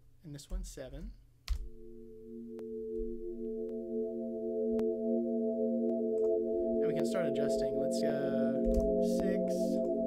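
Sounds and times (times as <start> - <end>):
synth pad drone: 1.7 - 10.0.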